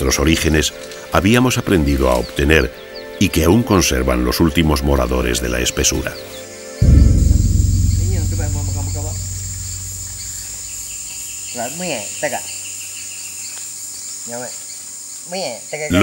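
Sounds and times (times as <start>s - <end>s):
deep low rumble: 6.8s - 11.0s.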